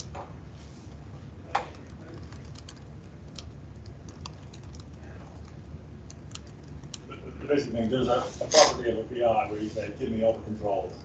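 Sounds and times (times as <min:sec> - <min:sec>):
low steady hum: 0:00.0 - 0:11.0
typing on computer keyboard: 0:01.8 - 0:07.0.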